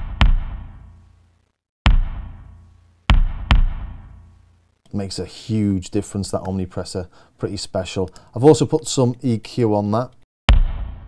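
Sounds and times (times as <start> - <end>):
electronic kick drum with reverb: 0.0 - 0.9, 1.9 - 4.3, 10.5 - 11.0.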